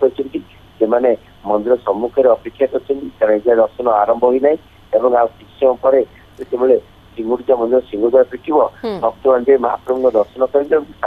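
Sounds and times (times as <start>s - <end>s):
person speaking over a telephone: 8.8s - 10.8s.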